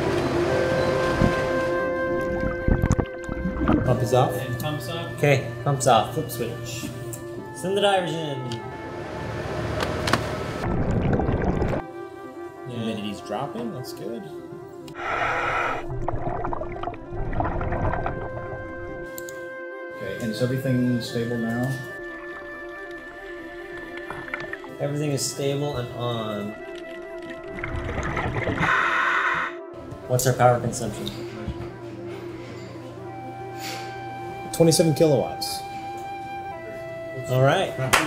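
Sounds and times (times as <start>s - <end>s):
music with sustained tones: 0.0s - 10.7s, 11.8s - 38.0s.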